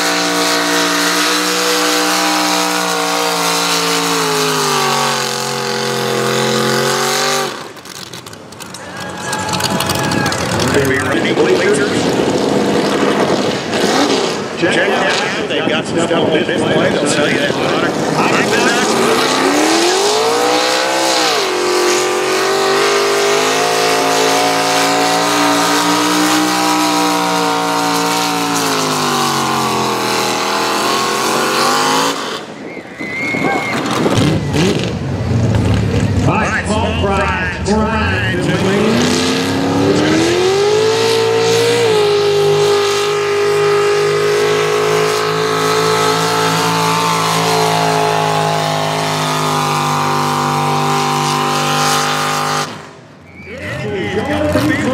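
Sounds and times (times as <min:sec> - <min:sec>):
tractor engine revving hard: 0:00.0 - 0:54.9.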